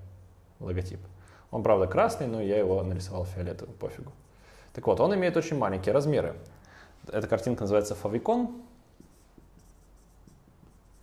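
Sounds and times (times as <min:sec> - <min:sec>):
marker writing on whiteboard: 0:08.9 - 0:11.0.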